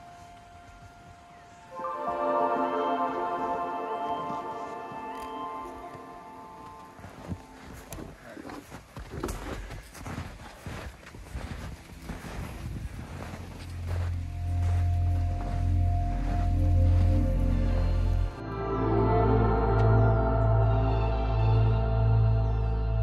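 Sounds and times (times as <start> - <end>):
footsteps in snow: 0.0 - 18.4
music with deep pulsing bass: 12.0 - 23.0.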